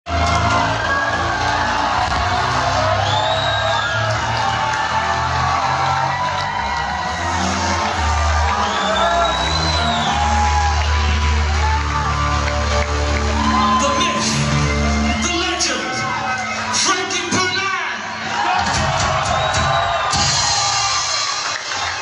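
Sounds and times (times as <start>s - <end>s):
crowd shouting: 0.1s - 22.0s.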